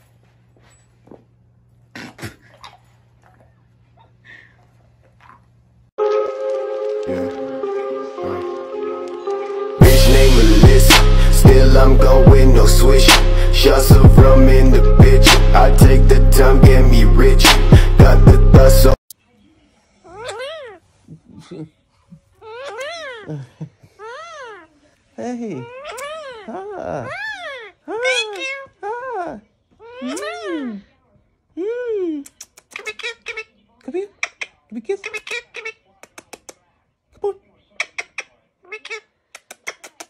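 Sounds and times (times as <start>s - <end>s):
parakeet chattering: 32.4s - 36.6s, 37.8s - 40.0s.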